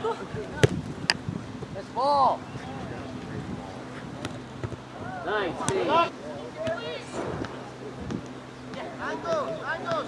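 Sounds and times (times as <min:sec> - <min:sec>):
ball being kicked: 0:00.6 - 0:00.8
faint distant voices: 0:01.7 - 0:10.0.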